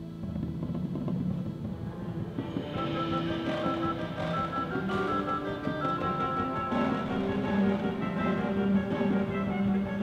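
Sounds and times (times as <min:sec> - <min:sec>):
marching band playing: 0:00.8 - 0:10.0.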